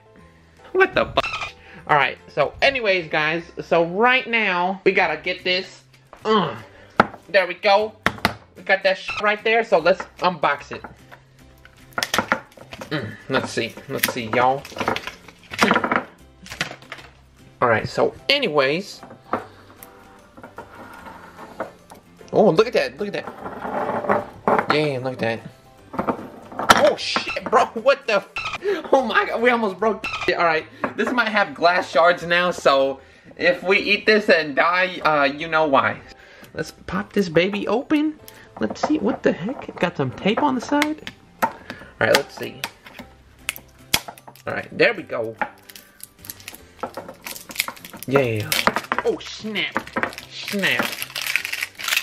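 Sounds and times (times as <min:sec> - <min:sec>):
faint background music: 0:00.0 - 0:52.0.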